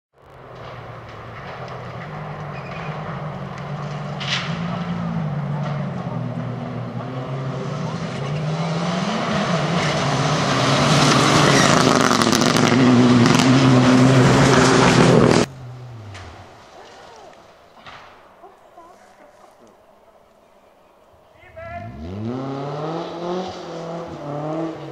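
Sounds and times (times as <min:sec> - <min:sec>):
rally car engines revving: 0:00.2 - 0:16.8, 0:21.5 - 0:24.9
sharp engine crackles: 0:00.2 - 0:20.1.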